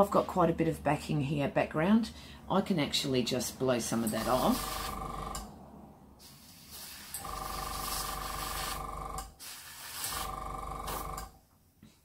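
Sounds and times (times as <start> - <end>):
compressor motor hum: 4.1 - 5.6, 7.0 - 11.4
air hissing from airbrush nozzle: 6.2 - 10.3.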